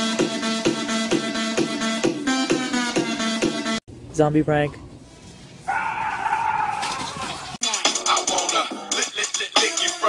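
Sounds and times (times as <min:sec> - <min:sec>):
person screaming: 0:05.7 - 0:07.4.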